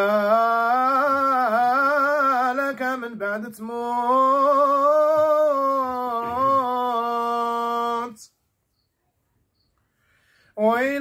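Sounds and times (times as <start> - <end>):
man chanting: 0.0 - 8.3, 10.6 - 11.0.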